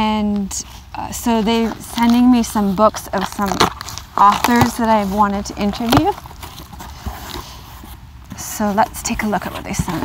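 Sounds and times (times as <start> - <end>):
cardboard box flaps rustling: 1.5 - 8.0.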